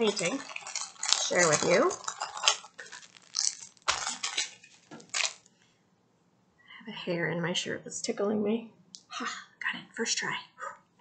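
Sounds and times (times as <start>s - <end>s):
packets clinking and rustling: 0.0s - 5.5s.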